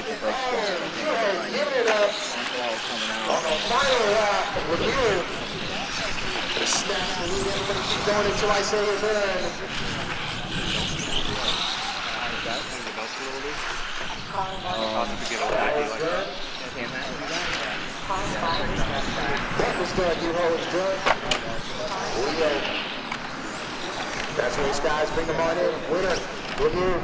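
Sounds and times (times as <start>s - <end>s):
rc car motors whining: 0.0s - 27.0s.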